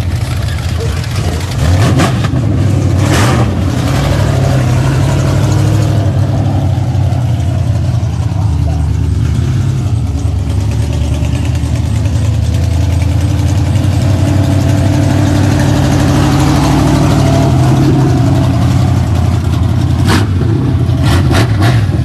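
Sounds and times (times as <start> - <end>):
race car engine running: 0.0 - 22.0.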